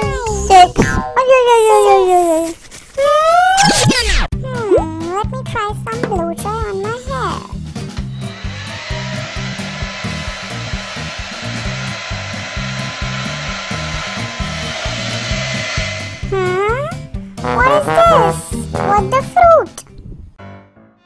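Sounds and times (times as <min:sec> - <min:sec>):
hair dryer blowing: 0:08.1 - 0:16.8
bouncy children's music: 0:16.6 - 0:19.8.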